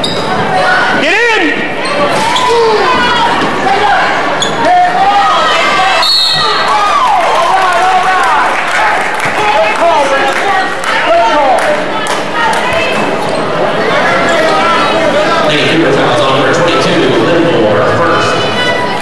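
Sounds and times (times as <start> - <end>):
sneakers squeaking on hardwood: 0.0 - 0.6.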